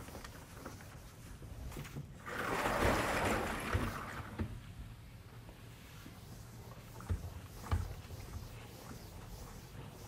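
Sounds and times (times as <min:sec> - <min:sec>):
eraser rubbing on blackboard: 0:06.2 - 0:10.0.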